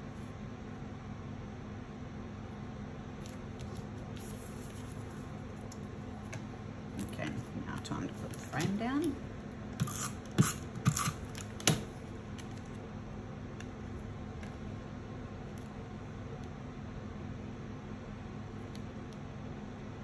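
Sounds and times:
low background hum: 0.0 - 20.0.

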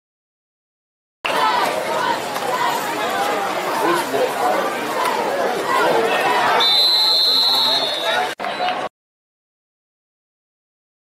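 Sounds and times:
crowd chatter: 1.2 - 8.9.

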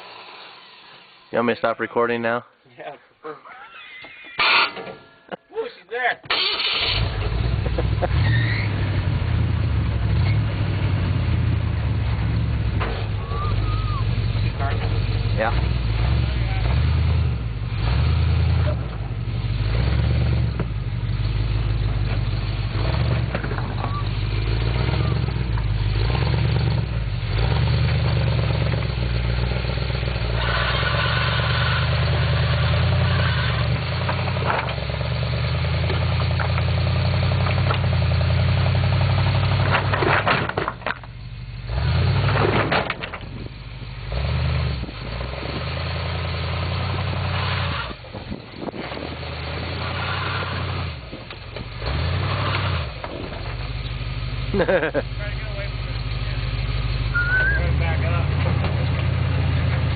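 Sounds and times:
truck engine under load: 4.1 - 5.4, 6.3 - 59.9.

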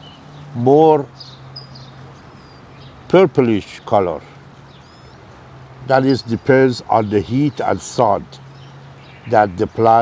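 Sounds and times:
faint bird chirps: 0.0 - 5.4.

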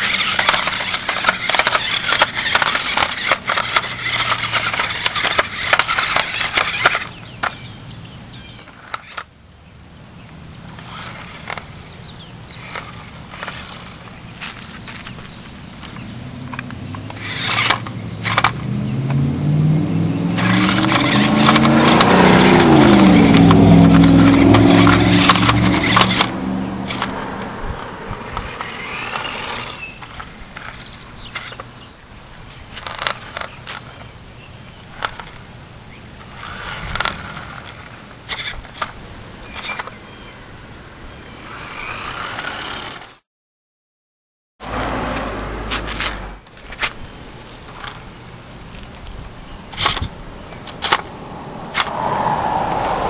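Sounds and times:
toy car electric motors whirring: 0.0 - 7.7, 8.4 - 9.3, 10.7 - 18.6, 20.4 - 27.2, 27.8 - 31.9, 32.5 - 34.1, 34.8 - 35.5, 36.2 - 40.3, 41.2 - 43.2, 45.7 - 48.0, 49.7 - 51.1
tyres scraping on concrete: 0.0 - 7.7, 8.4 - 9.3, 10.7 - 19.2, 20.3 - 34.2, 36.2 - 40.2, 41.3 - 43.2.

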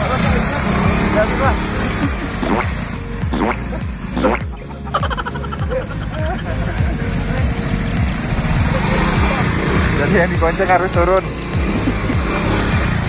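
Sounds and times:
motor scooter engine running: 0.0 - 13.0.

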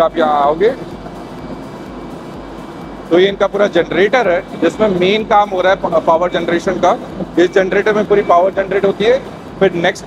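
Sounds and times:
faint high whine: 0.0 - 10.0
turbine machine drone: 0.0 - 10.0.

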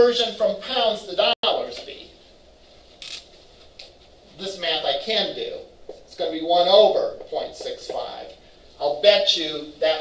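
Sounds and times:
marker writing on a whiteboard: 6.9 - 8.4.

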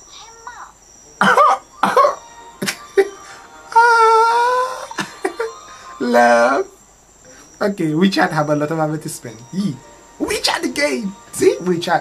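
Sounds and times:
person coughing: 1.2 - 2.8.

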